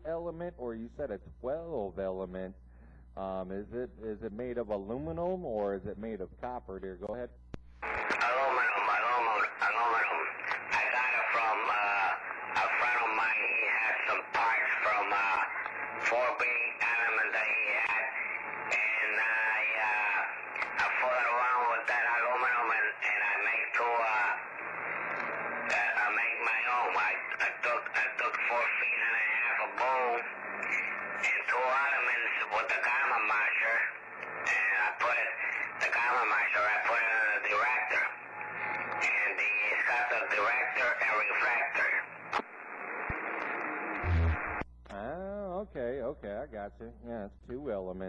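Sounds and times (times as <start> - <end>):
man talking over radio: 3.2 - 38.2, 38.8 - 42.2.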